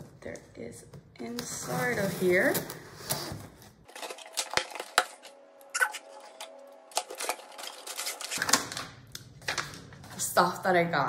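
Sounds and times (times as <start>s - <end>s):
packaging crinkling: 3.8s - 10.2s.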